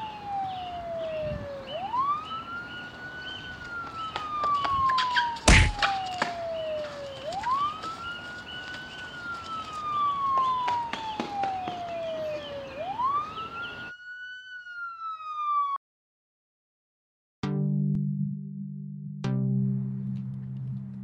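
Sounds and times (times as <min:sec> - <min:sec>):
street background noise: 0:00.0 - 0:13.9
police siren wailing: 0:00.0 - 0:15.8.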